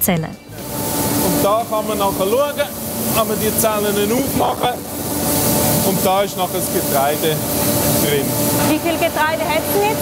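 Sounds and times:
silo machinery drone: 0:00.1 - 0:10.0.

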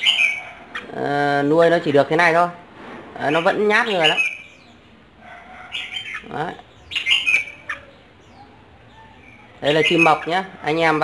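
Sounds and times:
bird calls: 0:00.0 - 0:02.1, 0:03.2 - 0:11.0.

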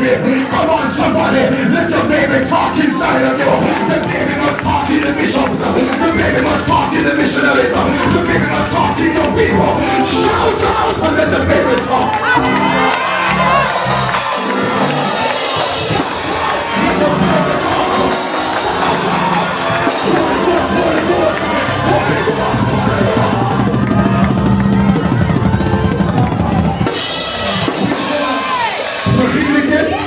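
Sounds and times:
church band playing worship music: 0:00.0 - 0:30.0
congregation voices and shouts: 0:00.0 - 0:30.0
drum kit: 0:13.3 - 0:30.0.

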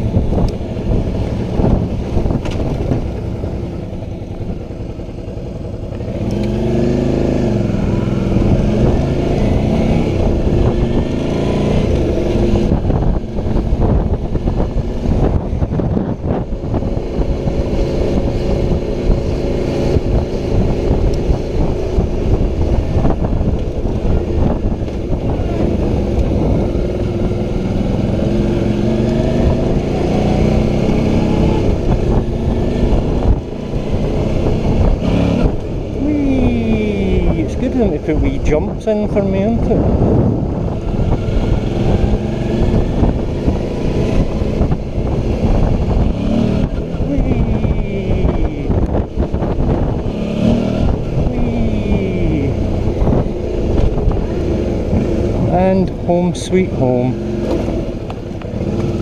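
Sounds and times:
motorcycle engine accelerating: 0:00.0 - 0:59.0
wind buffeting microphone: 0:00.0 - 0:59.0.

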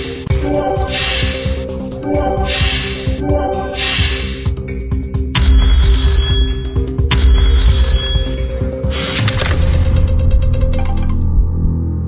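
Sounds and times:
slot game music: 0:00.0 - 0:11.4.

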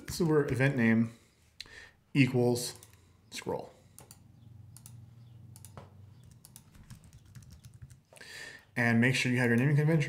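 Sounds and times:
keyboard and mouse clicks: 0:04.0 - 0:08.2.

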